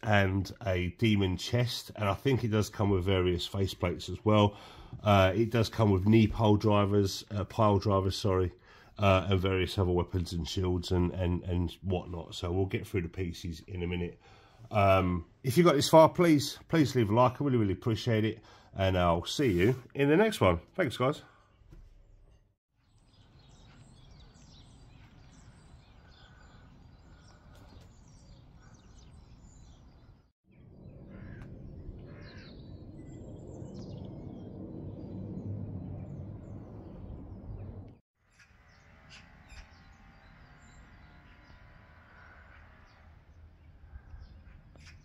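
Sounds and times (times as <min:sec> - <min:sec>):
birds calling: 0:20.3 - 0:45.0
wind rumbling on microphone: 0:23.1 - 0:38.0.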